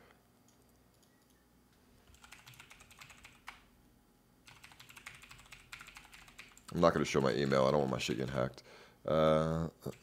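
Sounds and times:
faint typing on keyboard: 0:00.4 - 0:01.4, 0:02.1 - 0:03.7, 0:04.4 - 0:08.4.

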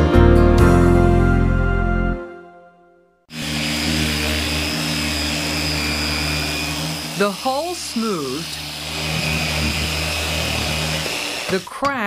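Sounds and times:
theme music: 0:00.0 - 0:03.5
orbital sander sanding wood: 0:03.3 - 0:12.0.

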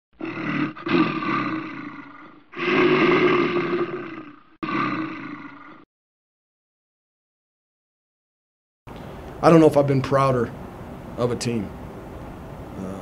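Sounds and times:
large animal roaring: 0:00.2 - 0:05.9.

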